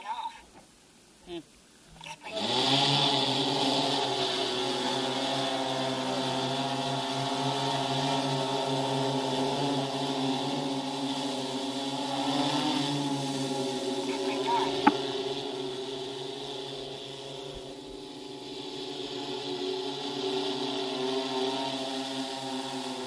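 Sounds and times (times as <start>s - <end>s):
drone propellers humming: 1.9s - 23.0s.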